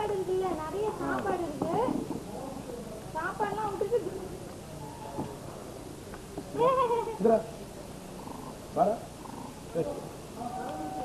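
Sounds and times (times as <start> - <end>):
monkeys calling: 8.2 - 8.6, 9.2 - 9.7.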